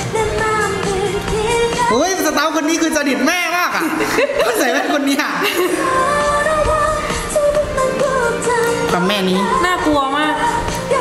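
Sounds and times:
pop song with woman singing: 0:00.0 - 0:02.8, 0:04.3 - 0:11.0.

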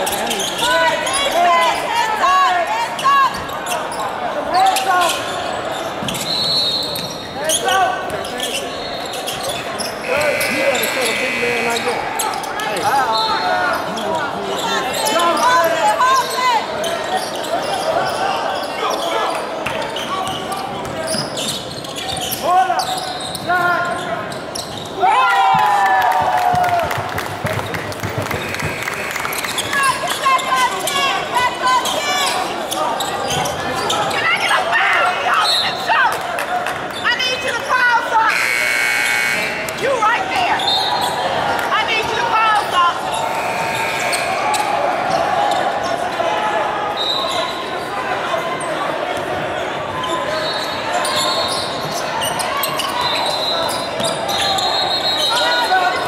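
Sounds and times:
players and spectators voices: 0:00.0 - 0:56.0
electronic buzzer: 0:10.0 - 0:12.0, 0:38.3 - 0:39.7, 0:43.3 - 0:44.4
basketball bouncing on court: 0:26.5 - 0:28.8.

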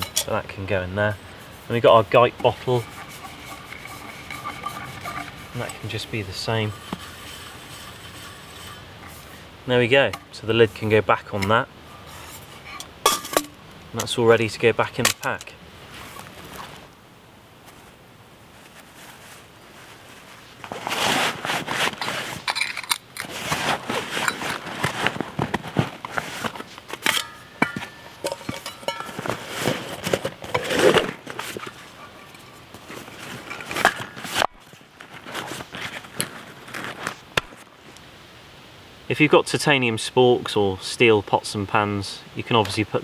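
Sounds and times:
fabric rustling: 0:17.6 - 0:22.6, 0:23.2 - 0:37.7.

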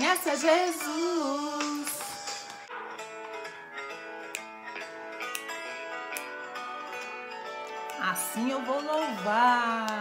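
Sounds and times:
acoustic guitar music: 0:01.9 - 0:10.0.

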